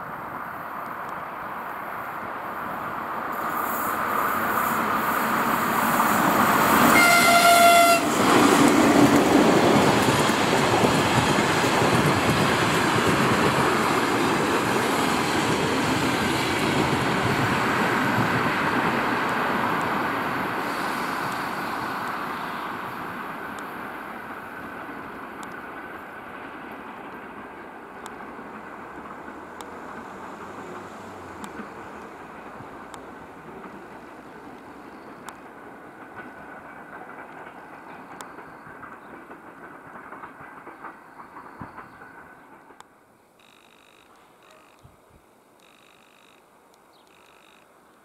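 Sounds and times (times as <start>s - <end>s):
train wheels rolling on rails: 0.0s - 44.8s
train horn: 6.6s - 8.3s.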